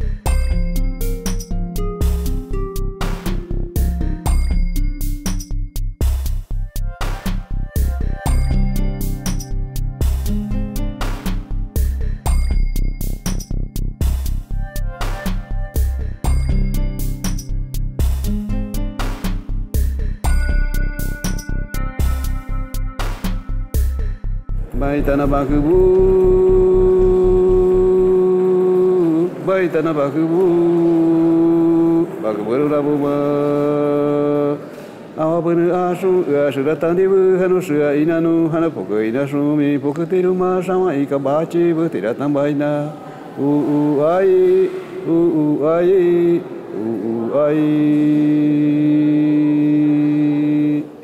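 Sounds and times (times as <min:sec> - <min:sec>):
low pulsing beat: 0:00.0 - 0:28.1
person chanting a long note: 0:24.7 - 0:38.1, 0:42.6 - 0:51.0.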